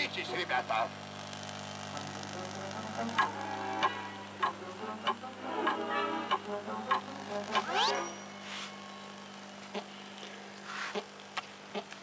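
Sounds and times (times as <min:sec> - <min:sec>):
faint television music: 0:00.0 - 0:10.5
steady low hum: 0:00.2 - 0:12.0.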